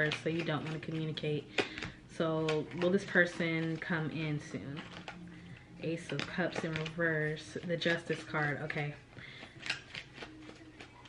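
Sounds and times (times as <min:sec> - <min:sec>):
cards snapping and rustling: 0:00.0 - 0:11.0.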